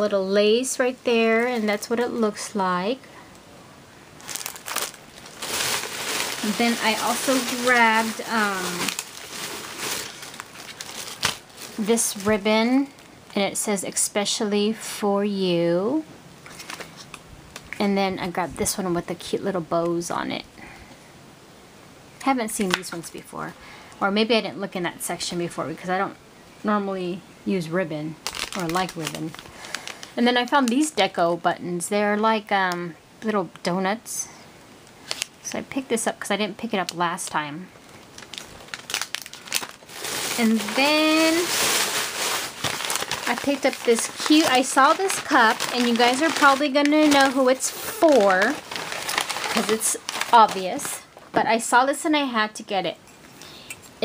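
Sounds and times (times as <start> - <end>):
woman speaking: 0.0 - 3.1, 6.4 - 9.0, 11.7 - 16.1, 17.8 - 20.5, 22.2 - 29.4, 30.2 - 34.4, 35.4 - 37.7, 40.2 - 41.6, 43.2 - 48.7, 49.5 - 53.0
plastic packaging crinkling: 4.2 - 13.1, 16.4 - 18.4, 28.2 - 31.1, 35.0 - 35.4, 36.8 - 51.4.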